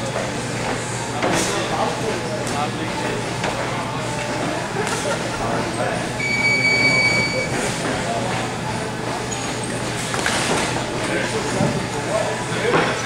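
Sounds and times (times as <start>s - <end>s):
high-pitched beep: 6.2s - 7.5s.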